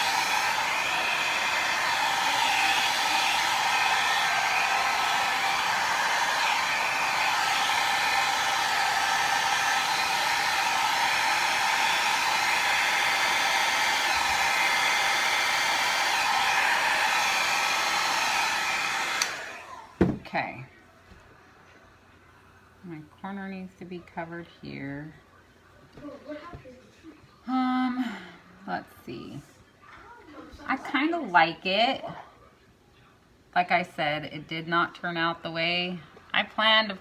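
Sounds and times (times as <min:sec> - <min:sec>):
hair dryer running: 0:00.0 - 0:20.2.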